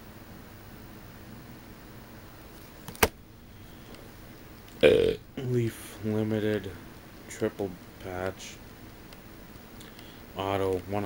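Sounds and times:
man burping loudly: 4.8 - 5.2.

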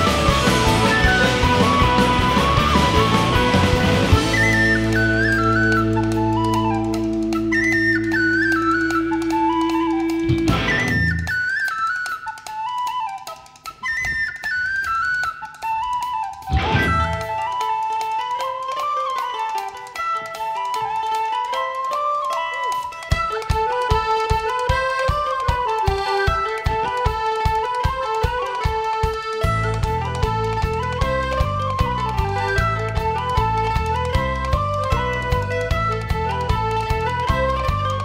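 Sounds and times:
strummed guitars: 0.0 - 38.0
tin whistle melody: 0.0 - 38.0.

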